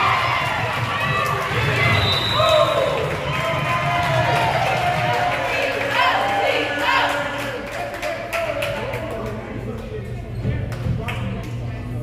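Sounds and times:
voices echoing in gymnasium: 0.0 - 12.0.

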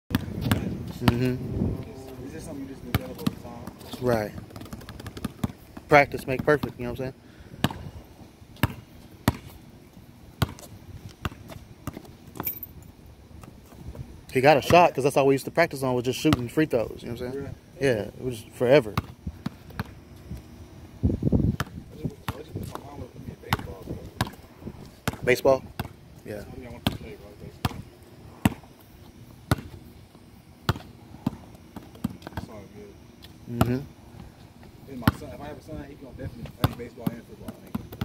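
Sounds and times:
basketball bouncing on asphalt: 0.1 - 1.4, 2.8 - 6.9, 7.6 - 7.9, 8.5 - 9.6, 10.4 - 12.5, 14.6 - 15.0, 16.2 - 16.6, 18.9 - 20.4, 21.4 - 26.0, 26.6 - 32.6, 33.2 - 33.9, 35.0 - 35.4, 36.4 - 38.0.

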